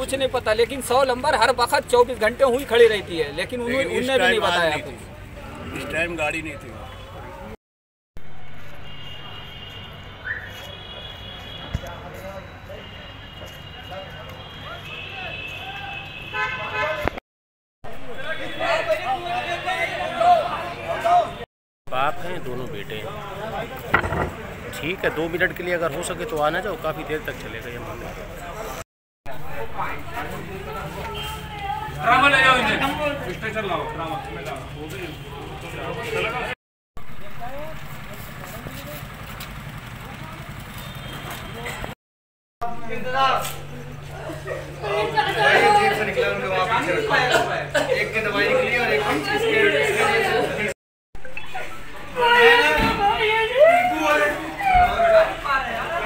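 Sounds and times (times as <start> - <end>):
vehicle horn: 8.6 - 11.8, 12.8 - 17.2
vehicle engine idling: 37.1 - 41.1.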